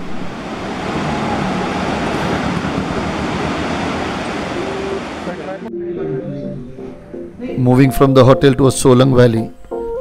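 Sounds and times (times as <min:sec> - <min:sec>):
river rushing over rapids: 0:00.0 - 0:05.6.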